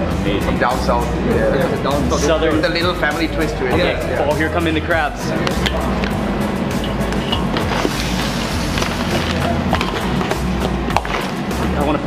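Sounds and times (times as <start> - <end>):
background music with bass line: 0.0 - 12.0
crab pieces clattering in a pan: 6.8 - 11.4.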